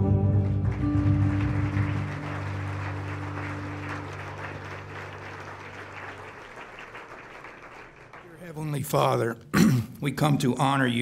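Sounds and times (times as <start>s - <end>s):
guitar and keyboard chord ringing: 0.0s - 5.5s
audience applauding: 0.4s - 9.2s.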